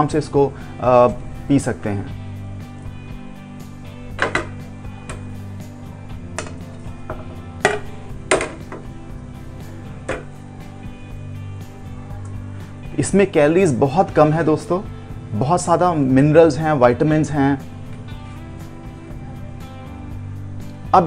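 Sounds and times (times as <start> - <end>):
background music: 0.0 - 21.0
knocks and clinks on metal pot: 4.2 - 4.6, 6.4 - 8.9.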